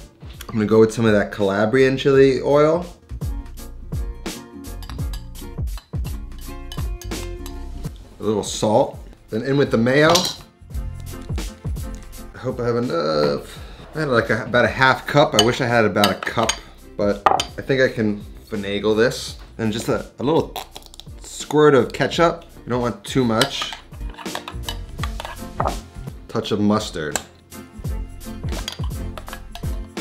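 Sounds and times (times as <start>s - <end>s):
background music: 0.0s - 30.0s
plastic bottle caps clicking: 20.6s - 21.1s, 23.4s - 25.7s.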